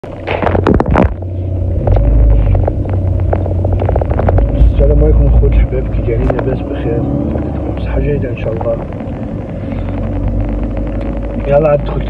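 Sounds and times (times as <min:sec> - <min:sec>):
car road rumble from cabin: 0:00.0 - 0:12.0
knocks and rustling: 0:00.2 - 0:07.8.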